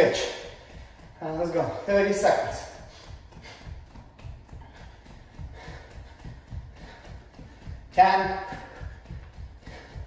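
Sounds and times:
bare feet thudding on hardwood floor: 0:00.0 - 0:10.0.

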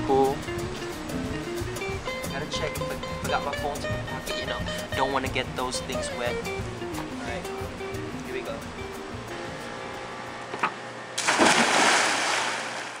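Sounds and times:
splash into swimming pool: 0:11.2 - 0:13.0.

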